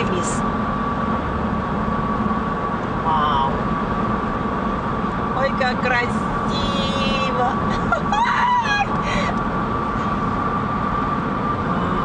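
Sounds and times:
car cabin road and wind noise: 0:00.0 - 0:12.0
constant thin whine: 0:00.0 - 0:12.0.

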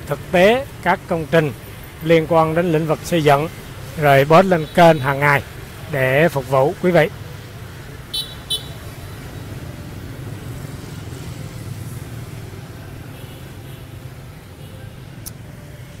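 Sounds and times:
street traffic rumble: 0:00.0 - 0:16.0.

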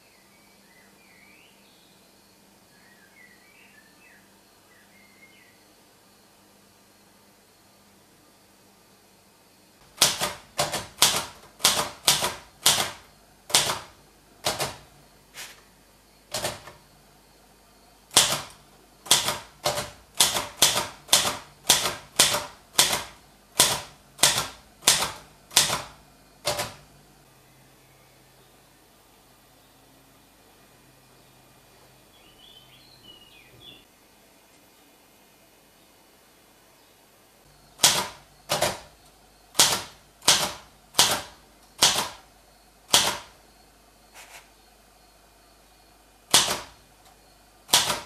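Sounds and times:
typewriter key strikes: 0:09.9 - 0:14.8, 0:16.3 - 0:16.8, 0:18.1 - 0:26.8, 0:37.8 - 0:38.9, 0:39.6 - 0:42.2, 0:42.9 - 0:43.3, 0:46.3 - 0:46.8, 0:47.7 - 0:48.0.

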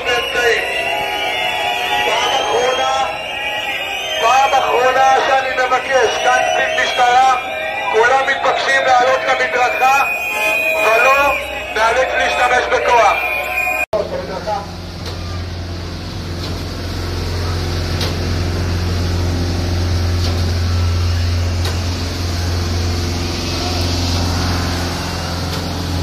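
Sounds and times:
truck engine droning: 0:00.0 - 0:26.0.

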